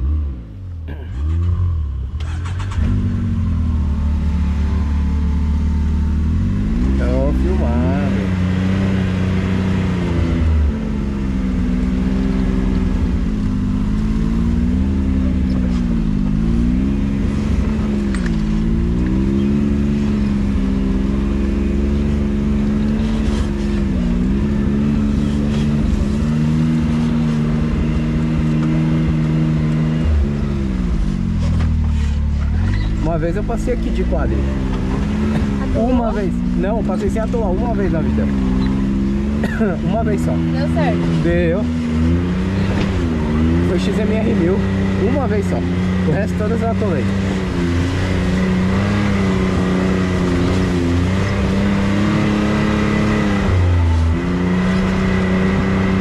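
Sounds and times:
engine running under load: 0:00.9 - 0:56.0.

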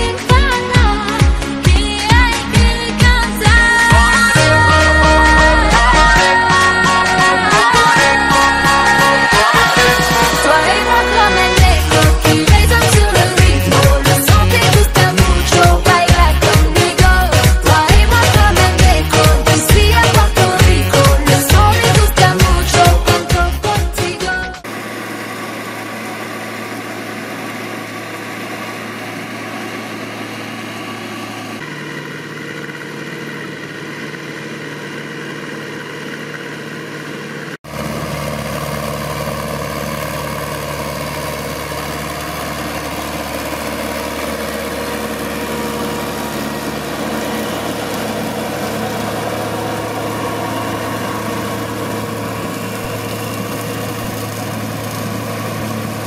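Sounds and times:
tractor diesel engine idling: 0:00.0 - 0:56.0.

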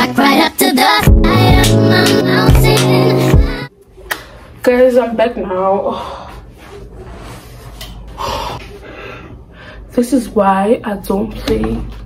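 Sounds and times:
woman breathing hard: 0:08.2 - 0:09.9.

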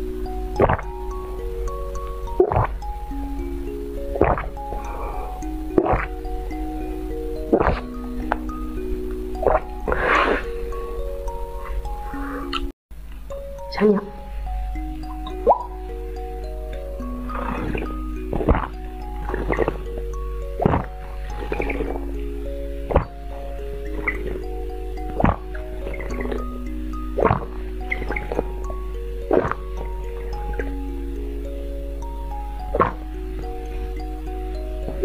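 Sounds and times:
gentle background music: 0:00.0 - 0:35.0.

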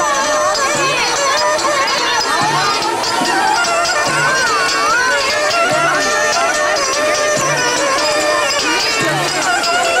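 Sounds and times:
children chattering: 0:00.0 - 0:10.0
loud folk music: 0:00.0 - 0:10.0.

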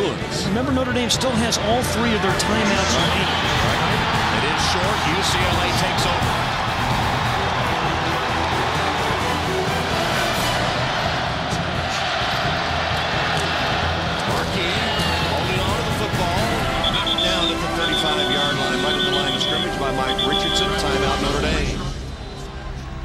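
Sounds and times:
music: 0:00.0 - 0:23.0
stadium crowd noise: 0:00.0 - 0:23.0.

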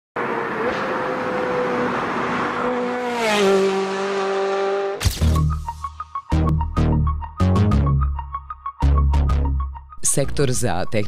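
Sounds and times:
car engine and tyre noise: 0:00.2 - 0:05.2.

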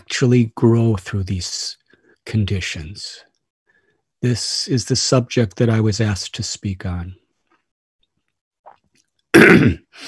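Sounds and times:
man clearing his throat: 0:09.4 - 0:10.0.

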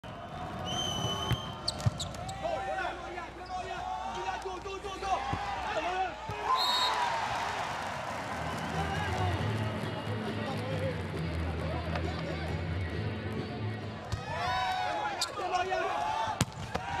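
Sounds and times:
referee's whistle: 0:00.6 - 0:02.4, 0:06.5 - 0:07.0
sneakers squeaking on court: 0:01.0 - 0:02.4.

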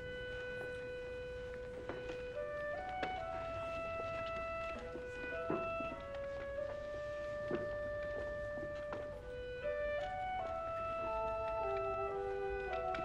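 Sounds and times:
quiet orchestral music: 0:00.0 - 0:13.0.

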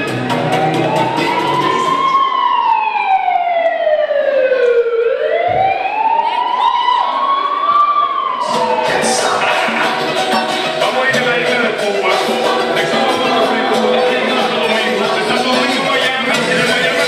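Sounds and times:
dance music beat: 0:00.0 - 0:02.3, 0:08.4 - 0:17.0
siren wail: 0:00.3 - 0:10.8.

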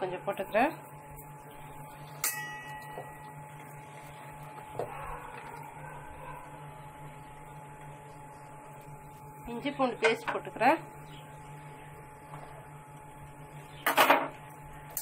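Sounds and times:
low machine hum: 0:00.0 - 0:15.0
sharp ringing clink: 0:02.2 - 0:03.2.

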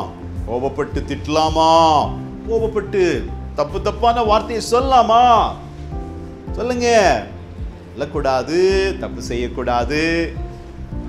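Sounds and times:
backing music: 0:00.0 - 0:11.0.

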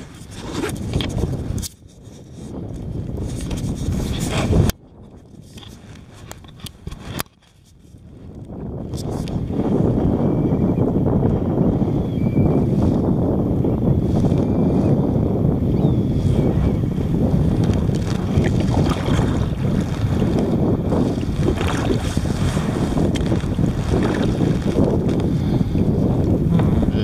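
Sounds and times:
wind buffeting microphone: 0:00.0 - 0:27.0
water splashing against kayak hull: 0:16.9 - 0:26.8.

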